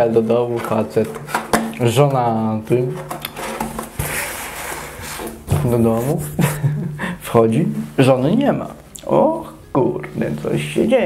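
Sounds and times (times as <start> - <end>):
soft rubbing hiss: 3.4 - 11.0.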